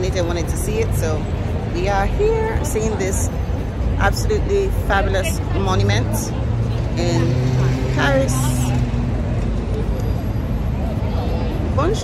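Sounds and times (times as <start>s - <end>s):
city road traffic: 0.0s - 12.0s
faint voices of passers-by: 0.0s - 12.0s.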